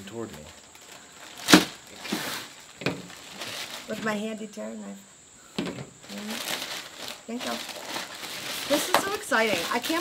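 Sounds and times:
knock on plastic table: 0:05.6 - 0:05.9
knife slicing plastic bag: 0:06.4 - 0:10.0.

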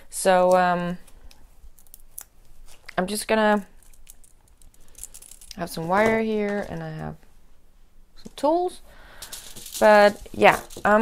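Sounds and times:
light rustles on plastic sheet: 0:09.1 - 0:11.0.

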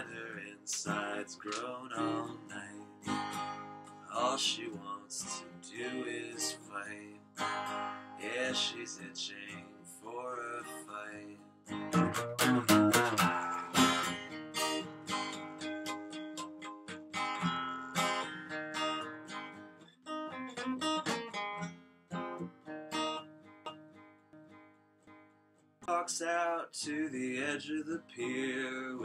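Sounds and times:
acoustic guitar strumming: 0:00.0 - 0:29.0.

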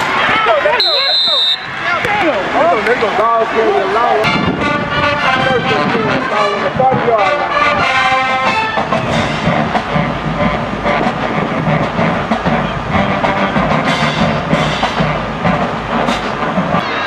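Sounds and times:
marching band playing: 0:00.0 - 0:17.0
bass drums and snares beat: 0:08.7 - 0:16.8.

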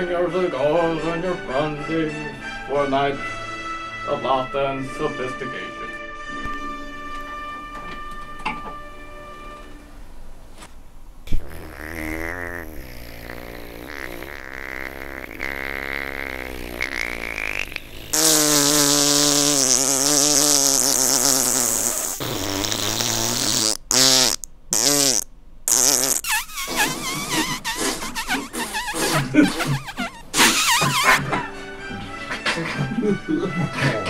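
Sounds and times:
person blowing a raspberry: 0:11.3 - 0:31.3.

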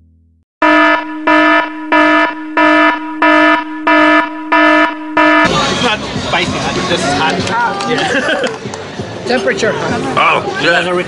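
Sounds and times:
pulsing alarm buzzer: 0:00.6 - 0:05.5.

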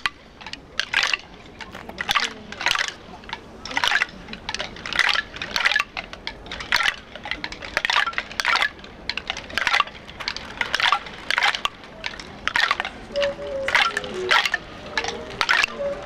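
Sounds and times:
bamboo percussion clattering: 0:00.0 - 0:16.0.

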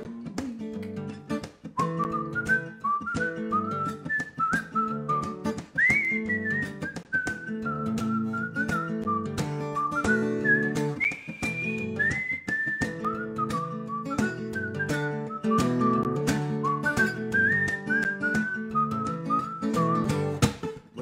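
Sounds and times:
acoustic guitar strumming: 0:00.0 - 0:21.0
whistled melody: 0:01.8 - 0:20.4.

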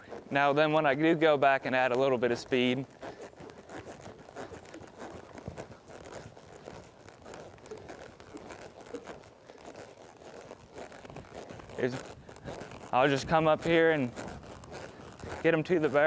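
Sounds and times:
horse hooves on soft dirt: 0:00.0 - 0:16.0
rustling and crinkling: 0:00.0 - 0:16.0.

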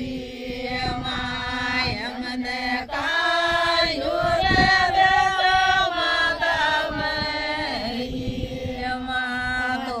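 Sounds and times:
women chanting a devotional song: 0:00.0 - 0:10.0.

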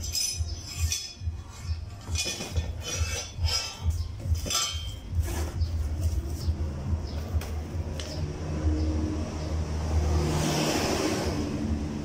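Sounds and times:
vehicle engine droning: 0:03.9 - 0:12.0
vehicle passing: 0:05.2 - 0:12.0.

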